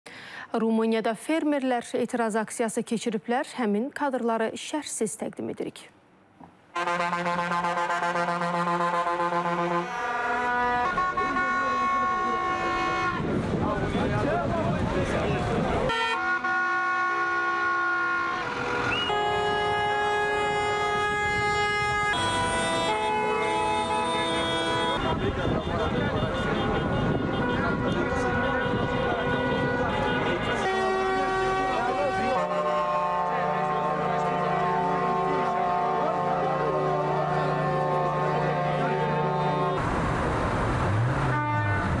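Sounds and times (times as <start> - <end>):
engine and street noise: 5.7 - 42.0
lorry and car horns blasting: 6.7 - 13.3, 15.9 - 39.8, 41.3 - 42.0.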